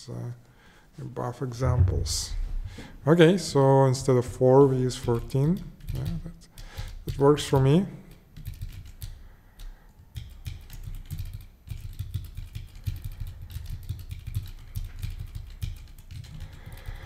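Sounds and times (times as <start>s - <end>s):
computer keyboard typing: 4.4s - 17.0s.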